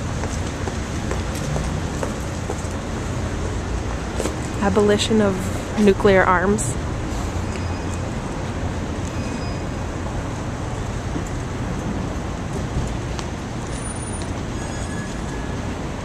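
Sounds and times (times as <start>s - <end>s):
low rumble of road traffic: 0.0s - 16.0s.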